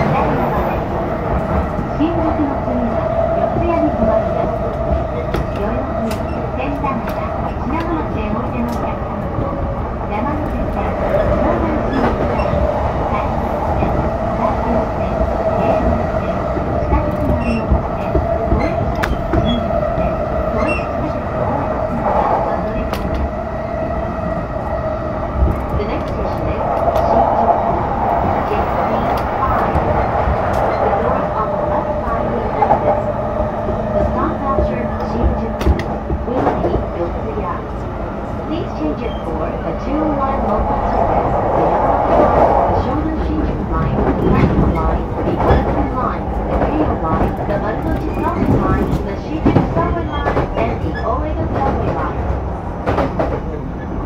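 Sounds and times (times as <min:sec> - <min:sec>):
steady train hum: 0:00.0 - 0:54.0
train wheels rumbling on rail: 0:00.0 - 0:54.0.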